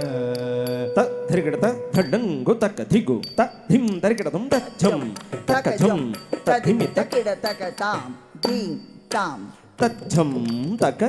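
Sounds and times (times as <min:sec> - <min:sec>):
vocalist holding sung note: 0:00.0 - 0:10.9
rhythmic syllable recitation: 0:00.0 - 0:11.0.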